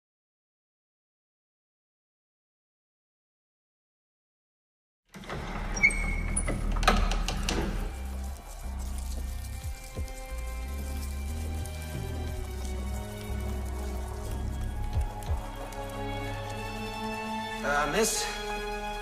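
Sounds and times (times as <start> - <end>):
dramatic background music: 5.2 - 19.0.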